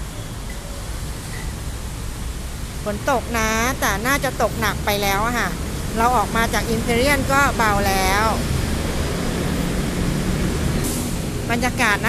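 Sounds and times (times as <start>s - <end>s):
traffic on wet street: 0.0s - 12.0s
woman talking: 2.9s - 8.4s, 11.5s - 12.0s.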